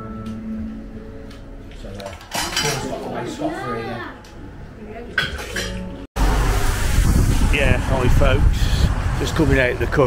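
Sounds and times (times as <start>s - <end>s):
plates and cutlery clinking: 2.0s - 3.0s, 5.2s - 6.0s.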